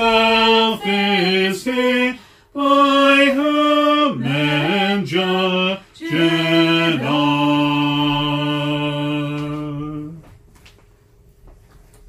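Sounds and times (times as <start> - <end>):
congregation singing a hymn: 0.0 - 10.2.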